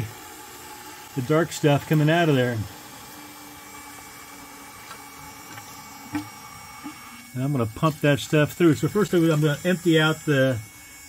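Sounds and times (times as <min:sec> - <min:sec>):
small water pump humming: 0:00.0 - 0:11.0.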